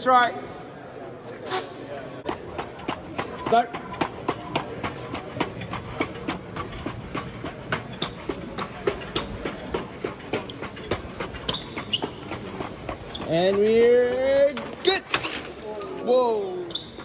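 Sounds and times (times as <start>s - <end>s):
people's footsteps: 1.0s - 17.0s.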